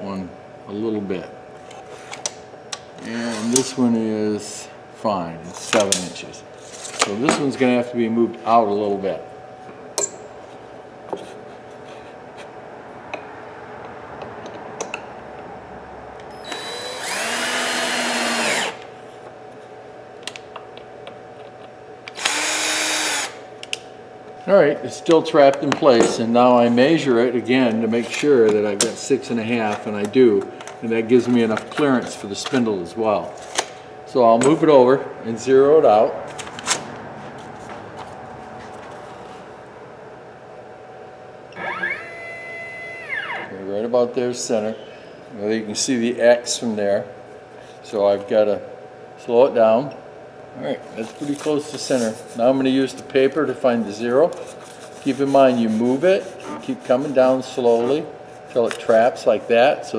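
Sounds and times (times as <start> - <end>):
power drill driving screws: 16.3 - 18.8, 22.2 - 23.4, 41.6 - 43.5
stepper motors humming and whining: 16.3 - 18.9, 41.5 - 43.6.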